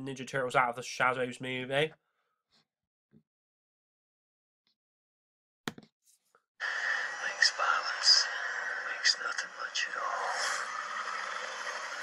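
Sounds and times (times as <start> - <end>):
voices: 6.6 - 12.0.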